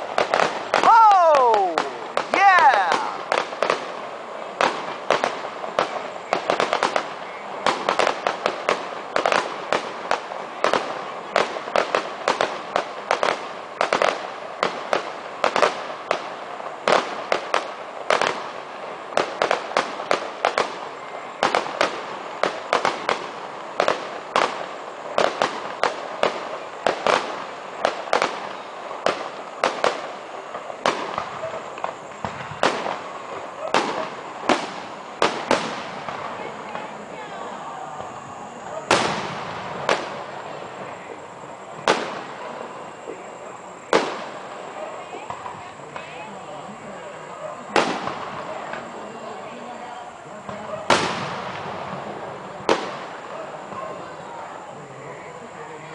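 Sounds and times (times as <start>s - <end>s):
fireworks bursting: 0.0s - 55.9s.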